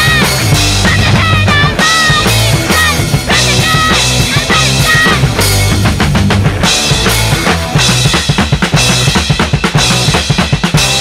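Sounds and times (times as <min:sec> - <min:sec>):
drum kit hits: 0:00.0 - 0:11.0
hardcore punk music: 0:00.0 - 0:11.0.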